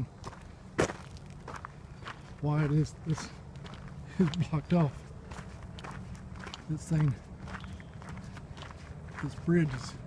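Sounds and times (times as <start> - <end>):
footsteps on gravel: 0.0 - 10.0.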